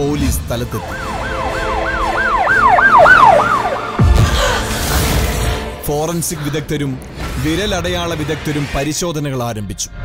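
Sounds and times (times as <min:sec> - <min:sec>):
siren in fast yelp: 0:00.8 - 0:04.0.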